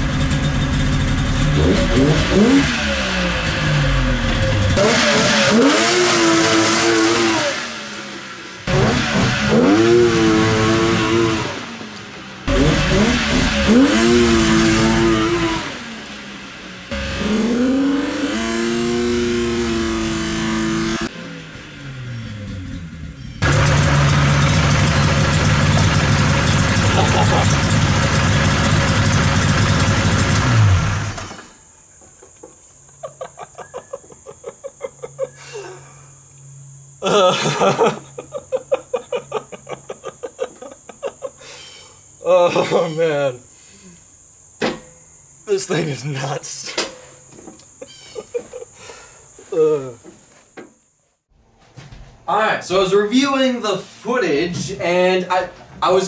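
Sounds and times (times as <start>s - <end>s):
go-kart engine revving: 0.0s - 31.6s.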